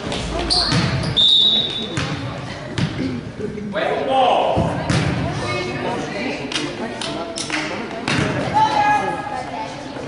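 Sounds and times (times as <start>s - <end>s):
voices in a hall: 0.0s - 10.0s
basketball thumping: 1.9s - 3.0s.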